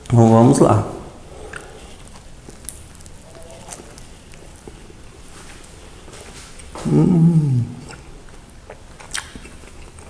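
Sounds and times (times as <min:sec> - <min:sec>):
man chewing bread: 0:01.2 - 0:10.0
soft mouth clicks: 0:01.5 - 0:03.1, 0:06.8 - 0:08.1, 0:08.7 - 0:10.0.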